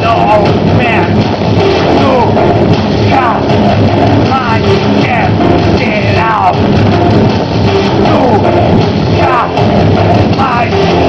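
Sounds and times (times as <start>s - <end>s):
loud live electronic band: 0.0s - 11.0s.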